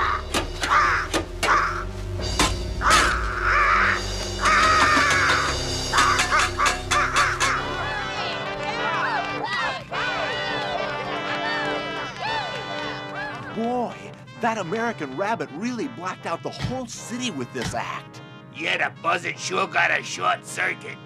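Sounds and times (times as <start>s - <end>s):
gliding bird cries: 0.0s - 1.9s, 2.8s - 8.4s
buzzard cawing: 0.0s - 11.7s
orchestral music: 0.0s - 21.0s.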